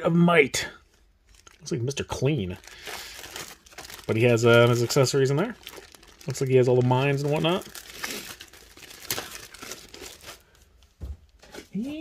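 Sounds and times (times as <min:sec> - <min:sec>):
plastic bags crinkling: 0:01.2 - 0:12.0.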